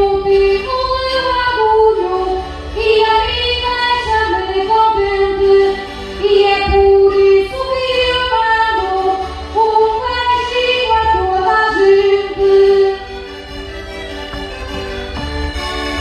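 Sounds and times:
woman singing into microphone: 0:00.0 - 0:13.1
instrumental accompaniment: 0:00.0 - 0:16.0.

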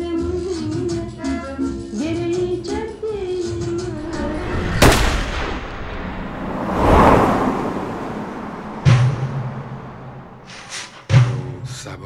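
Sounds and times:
rumbling swell: 0:03.7 - 0:10.7
heavy booming hit: 0:03.9 - 0:06.2
gunshot crack: 0:04.2 - 0:06.2.

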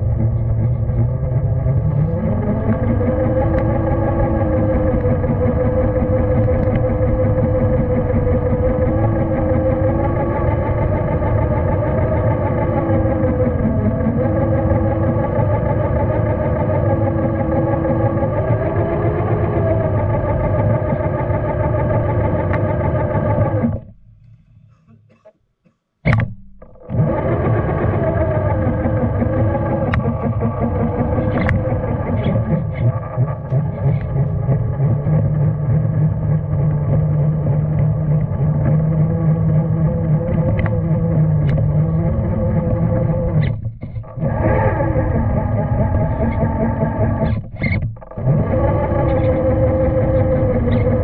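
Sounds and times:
rc car motor drone: 0:00.0 - 0:23.9, 0:26.8 - 0:51.0.

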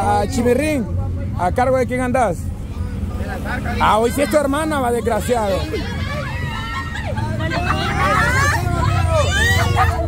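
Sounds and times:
street traffic rumble: 0:00.0 - 0:10.0
voices talking and calling out: 0:00.0 - 0:10.0.

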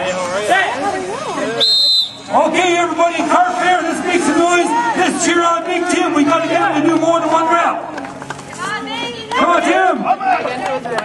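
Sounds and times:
high-pitched whistle: 0:01.6 - 0:02.3.

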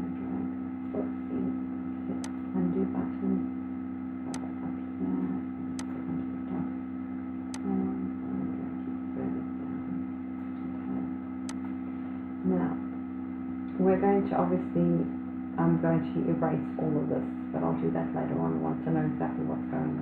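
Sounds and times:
electrical mains hum: 0:00.0 - 0:20.0.

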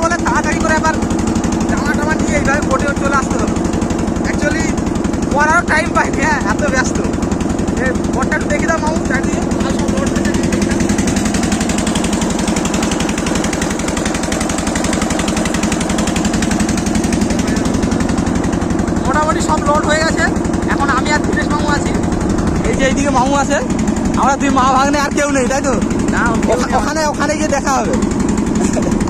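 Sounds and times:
motorboat engine chugging: 0:00.0 - 0:29.0.

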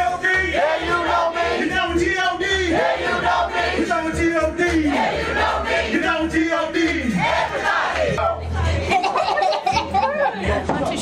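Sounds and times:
low thumping beat: 0:00.0 - 0:08.3.

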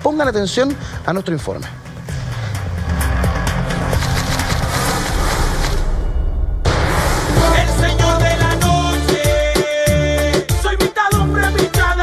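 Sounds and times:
television sting music: 0:02.6 - 0:09.1.

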